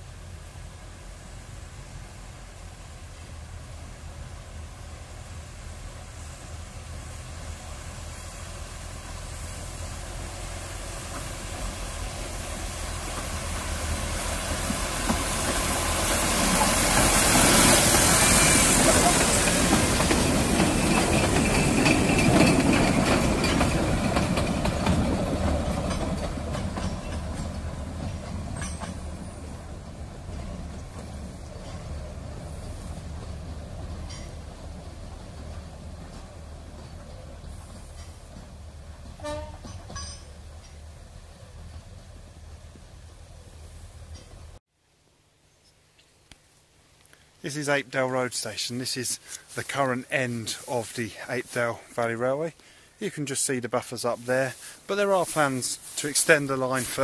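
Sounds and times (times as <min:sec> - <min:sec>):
hiss: 0:00.0 - 0:25.6, 0:54.5 - 0:57.0
diesel locomotive passing: 0:00.0 - 0:44.6
sharp clicks of train: 0:08.7 - 0:41.9.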